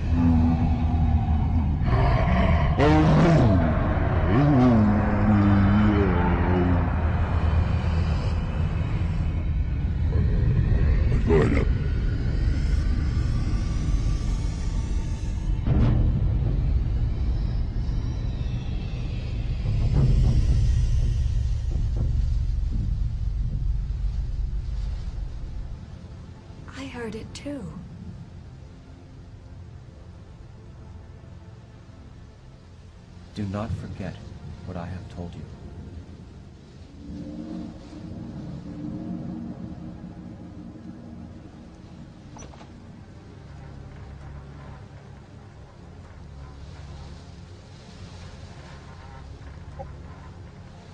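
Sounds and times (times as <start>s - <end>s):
low rumbling ambient drone: 0.0s - 50.9s.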